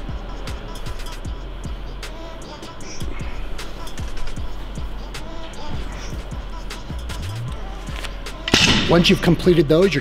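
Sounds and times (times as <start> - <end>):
background music with steady beat: 0.0 - 10.0
man speaking: 8.9 - 10.0.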